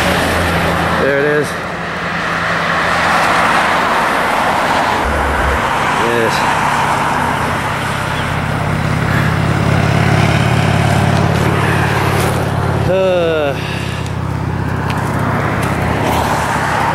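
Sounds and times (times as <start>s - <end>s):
cars passing on highway: 0.0s - 16.9s
steady low hum: 5.0s - 8.7s.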